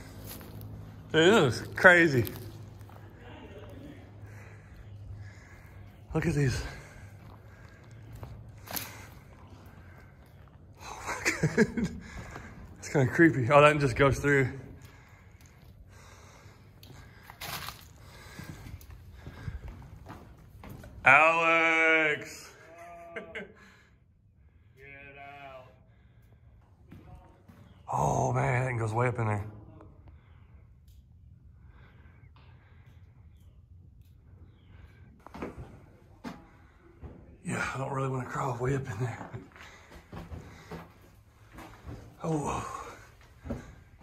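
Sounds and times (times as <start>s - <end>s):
footsteps on gravel: 0.0s - 10.7s, 15.4s - 21.0s.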